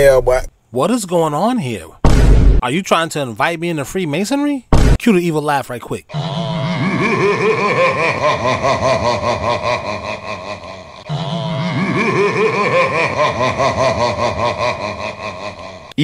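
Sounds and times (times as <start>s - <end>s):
deep evil laugh: 6.1s - 16.0s.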